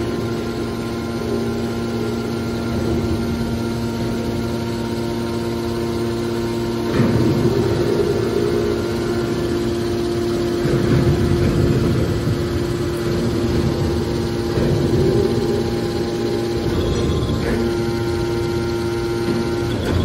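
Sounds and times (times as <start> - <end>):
hydraulic baler motor hum: 0.0 - 20.0
hydraulic rushing surges: 0.0 - 20.0.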